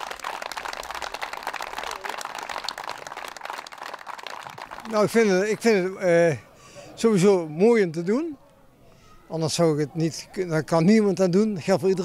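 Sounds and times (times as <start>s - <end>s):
crowd applauding: 0.0s - 5.7s.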